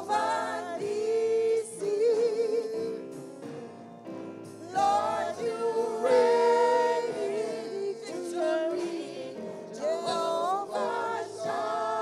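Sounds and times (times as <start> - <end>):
group singing in harmony: 0.0 - 3.6, 4.4 - 12.0.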